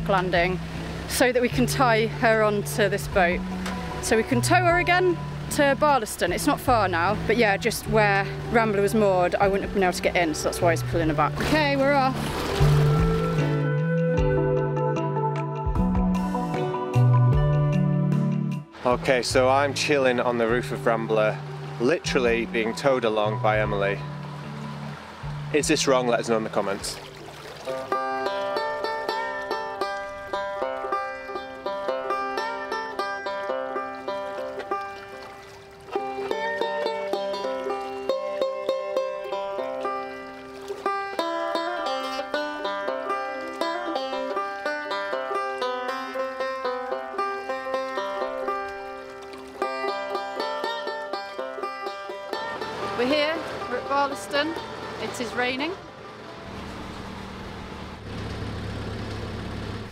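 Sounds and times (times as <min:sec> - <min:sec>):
woman speaking: 0:00.0 - 0:03.4, 0:04.0 - 0:12.2, 0:53.0 - 0:55.8
banjo playing a plucked tune: 0:00.0 - 0:13.8, 0:18.2 - 0:27.1, 0:27.7 - 0:56.3.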